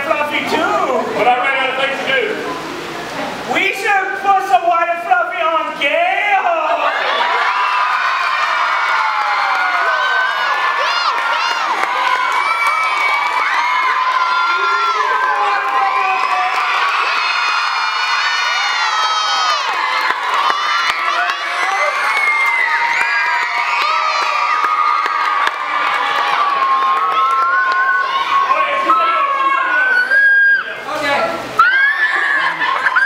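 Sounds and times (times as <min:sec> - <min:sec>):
crowd of young voices cheering: 0:06.4 - 0:33.0.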